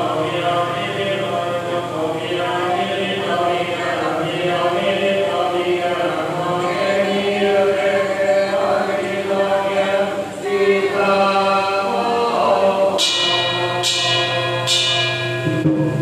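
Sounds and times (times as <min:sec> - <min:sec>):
group chanting prayers in unison: 0:00.0 - 0:15.9
sharp percussion strikes: 0:12.4 - 0:16.0.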